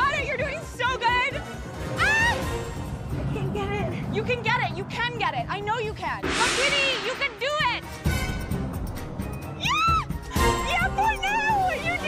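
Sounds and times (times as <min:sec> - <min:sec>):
women shrieking and shouting: 0:09.6 - 0:12.0.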